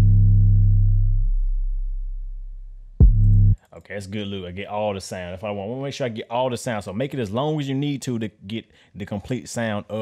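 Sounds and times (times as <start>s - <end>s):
distorted deep bass note: 0.0s - 3.6s.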